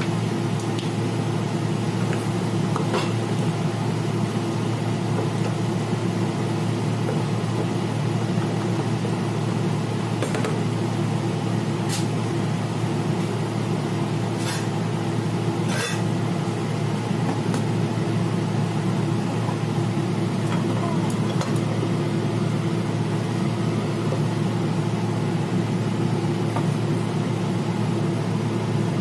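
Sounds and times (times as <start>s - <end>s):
kitchen equipment humming: 0.0s - 29.0s.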